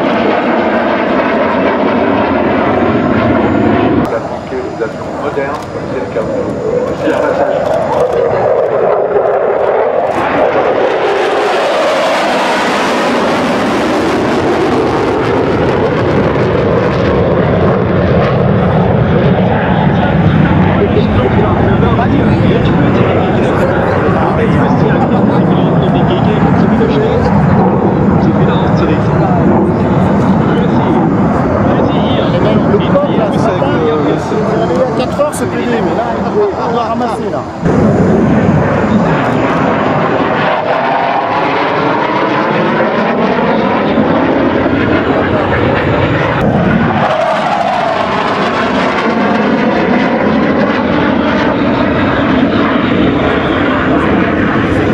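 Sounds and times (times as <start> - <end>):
jet engine hiss: 0.0 - 54.9
jet engine rumble: 0.0 - 54.9.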